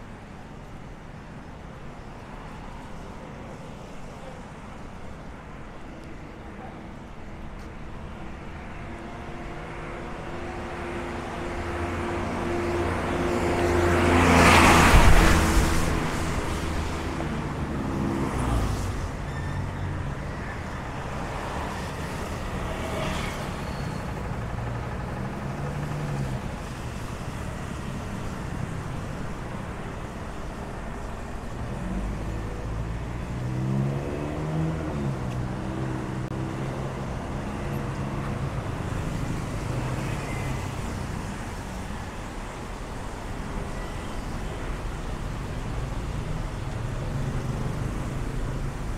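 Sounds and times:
street traffic engines: 0.0 - 48.9.

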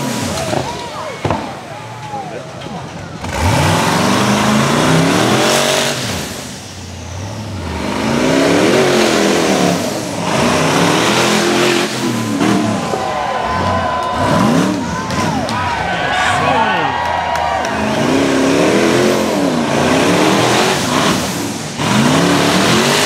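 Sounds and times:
engine revving hard: 3.2 - 23.0.

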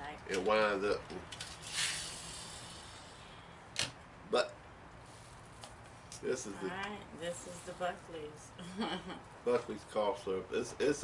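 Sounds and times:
wind-up toy motor whirring: 1.4 - 3.1.

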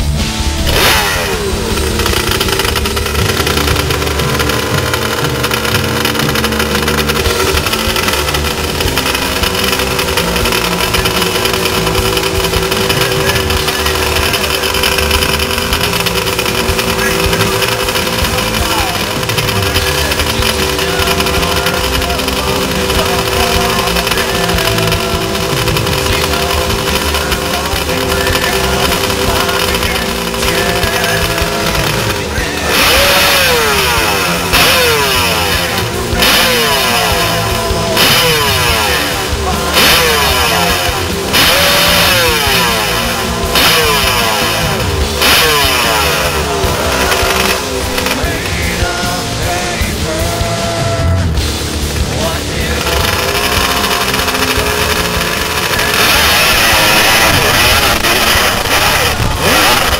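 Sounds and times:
two-stroke motorcycle engine idling: 0.0 - 59.9.

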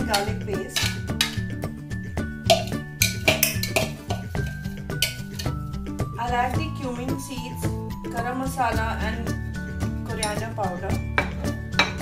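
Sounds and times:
metal spoon scraping bowls: 0.0 - 1.6, 2.3 - 5.8
background music: 0.0 - 12.0.

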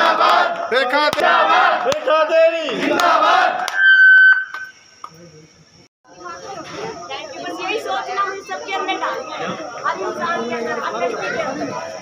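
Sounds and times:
shrill steady tone: 3.7 - 4.9.

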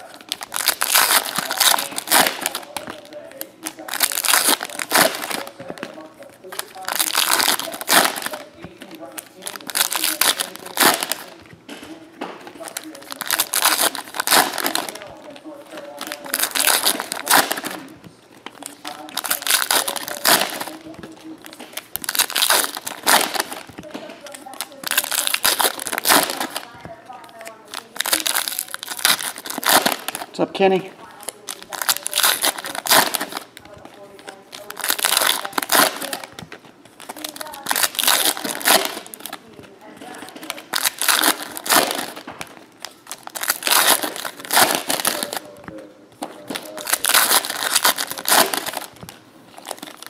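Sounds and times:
foil packs torn and crinkled: 0.0 - 12.0, 12.6 - 18.0, 18.6 - 30.4, 31.0 - 50.0.

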